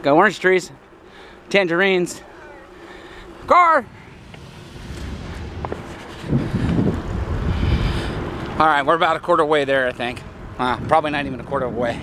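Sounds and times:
wind rumble on microphone: 3.8s - 8.8s, 10.0s - 12.0s.

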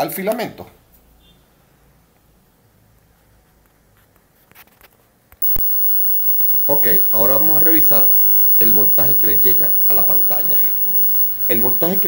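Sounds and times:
low background hum: 5.4s - 12.0s.

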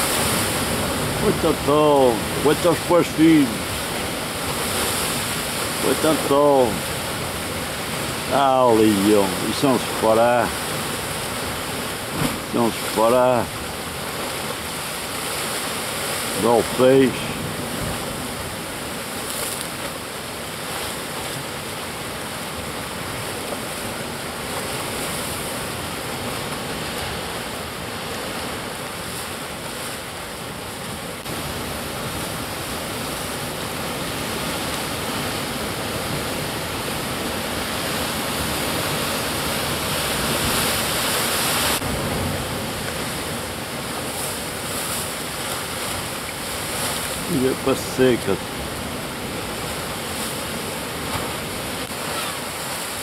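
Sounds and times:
waves breaking against rocks: 0.0s - 53.0s.

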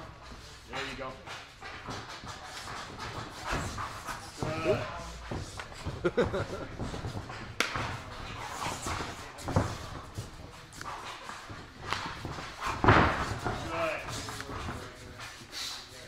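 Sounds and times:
shuffling on canvas: 0.0s - 16.0s
leather strap slapping: 7.5s - 7.9s.

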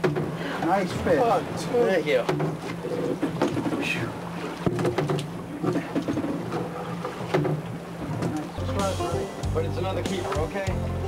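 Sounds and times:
boat engine humming: 0.0s - 11.0s
fish thumping on boat deck: 2.2s - 8.5s.

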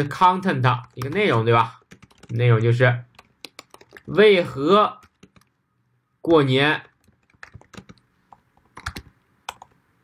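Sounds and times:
computer keyboard keys clicking: 0.8s - 2.4s, 3.1s - 4.2s, 5.0s - 5.6s, 6.8s - 9.8s.

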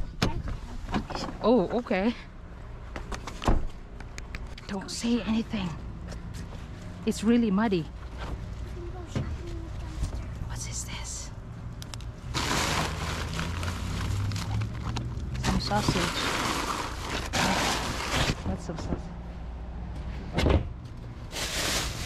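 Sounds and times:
plastic bin bags rustling: 12.3s - 18.4s, 21.2s - 22.0s.

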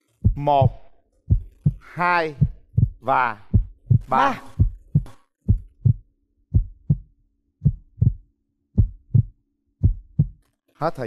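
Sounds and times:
heartbeat thumps: 0.2s - 10.4s.

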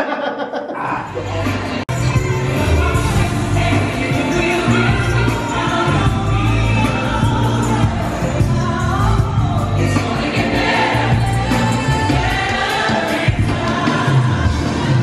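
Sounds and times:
crowd noise: 0.0s - 15.0s
gospel singer and choir: 0.0s - 15.0s.

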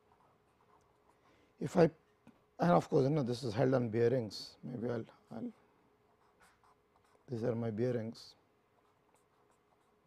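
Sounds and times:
marker pen scratching on paper: 0.0s - 1.3s, 6.0s - 7.7s, 8.6s - 10.0s.

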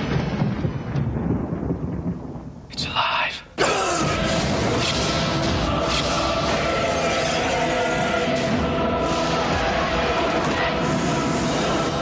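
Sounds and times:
thunder rumbling: 0.0s - 5.7s.

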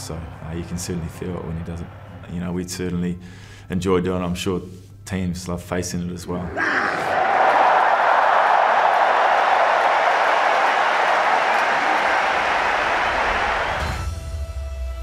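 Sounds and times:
stadium crowd roaring: 6.3s - 14.0s.

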